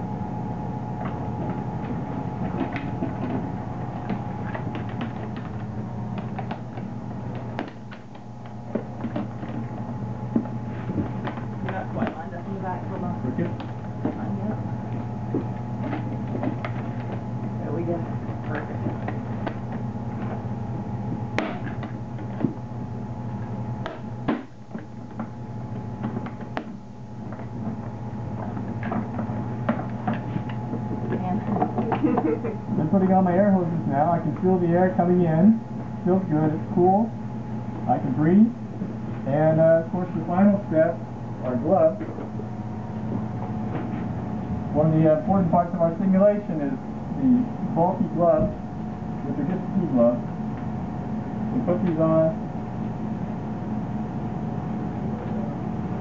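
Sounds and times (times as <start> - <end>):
electric fan hum: 0.0 - 56.0.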